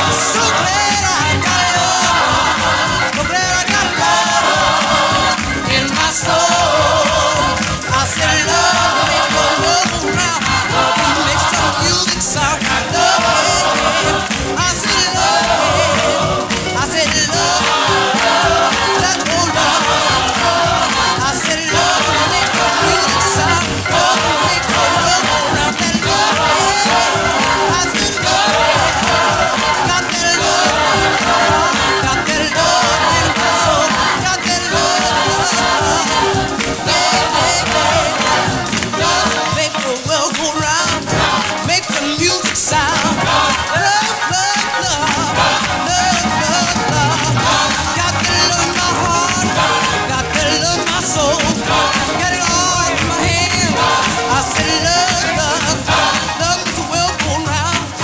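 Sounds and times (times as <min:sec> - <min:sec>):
gospel choir singing: 0:00.0 - 0:58.0
instrumental accompaniment: 0:00.0 - 0:58.0.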